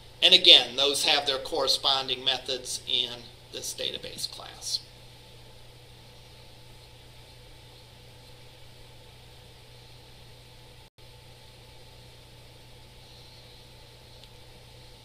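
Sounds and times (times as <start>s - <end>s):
low electrical hum: 0.0s - 15.0s.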